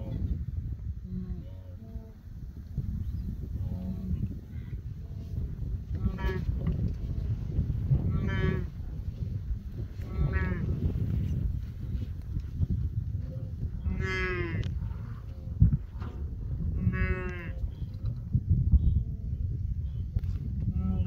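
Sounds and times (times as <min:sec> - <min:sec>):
steady low rumble: 0:00.0 - 0:21.0
wildebeest grunting calls: 0:08.1 - 0:08.8, 0:10.0 - 0:10.7, 0:13.8 - 0:14.6, 0:16.8 - 0:17.6.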